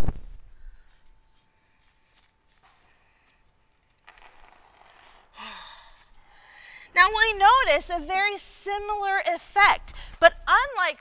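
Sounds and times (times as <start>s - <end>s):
breathy sigh with voice: 5.4s - 6.9s.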